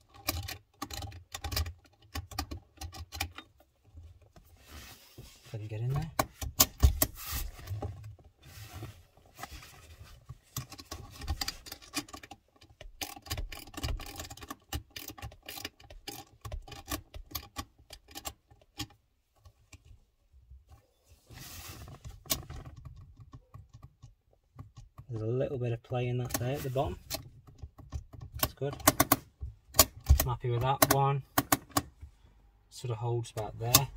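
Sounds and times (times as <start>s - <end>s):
spanner clicking and rattling on metal: 10.8s - 19.0s.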